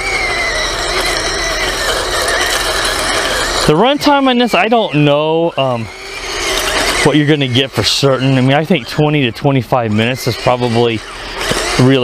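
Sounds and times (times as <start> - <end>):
electric motors whining: 0.0 - 12.0.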